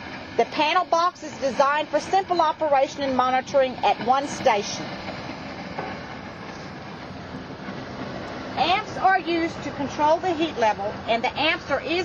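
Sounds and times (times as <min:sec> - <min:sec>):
steam venting from pipe: 0:00.0 - 0:12.0.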